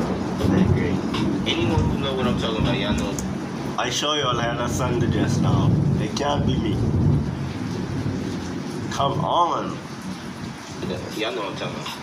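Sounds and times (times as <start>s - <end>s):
low background rumble: 0.0s - 9.8s.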